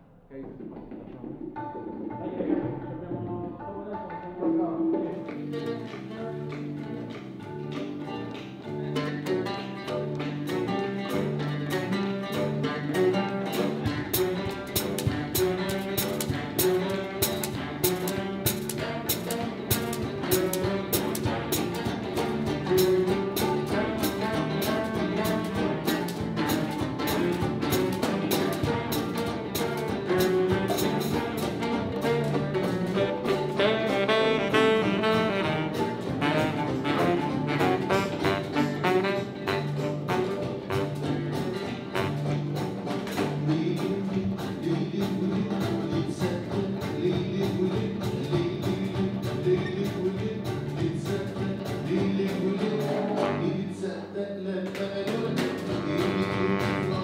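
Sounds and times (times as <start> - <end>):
jazzy band with horns and bass: 5.1 - 57.0.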